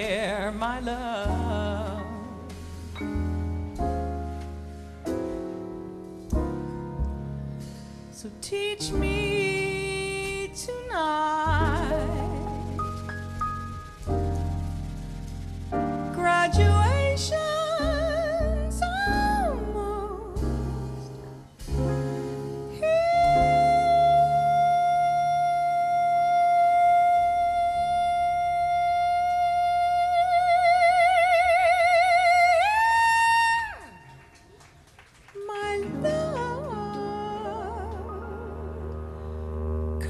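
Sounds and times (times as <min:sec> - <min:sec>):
wordless female vocal: 0:00.0 - 0:02.5
upright bass notes: 0:00.0 - 0:32.5, 0:35.8 - 0:40.0
drums: 0:00.0 - 0:39.4
piano chords: 0:00.0 - 0:40.0
woman singing long held notes: 0:22.8 - 0:34.0.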